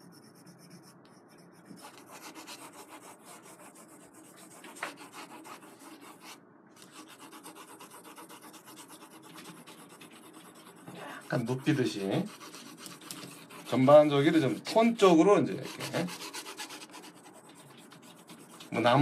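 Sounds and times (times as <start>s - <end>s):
pencil shading on paper: 0.0s - 19.0s.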